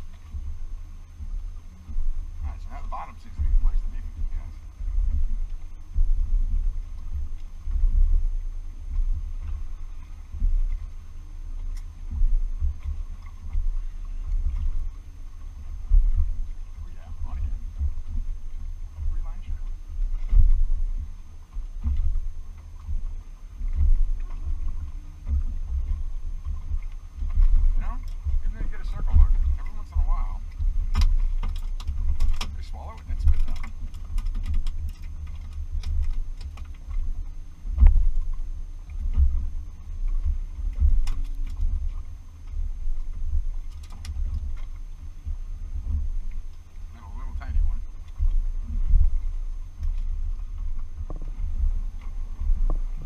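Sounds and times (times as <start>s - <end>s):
waves slapping boat hull: 0.0s - 53.0s
wind rumbling on microphone: 0.0s - 53.0s.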